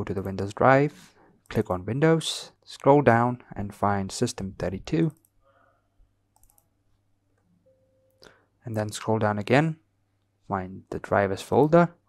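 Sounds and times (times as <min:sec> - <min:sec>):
computer mouse clicks: 0:06.3 - 0:06.7.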